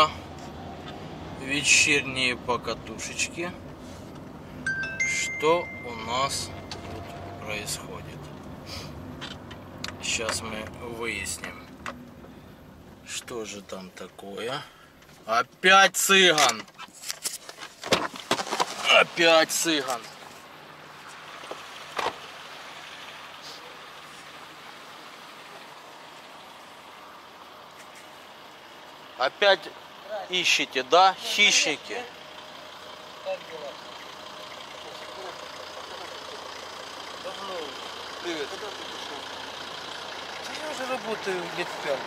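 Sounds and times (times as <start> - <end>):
street traffic hum: 0.0 - 42.0.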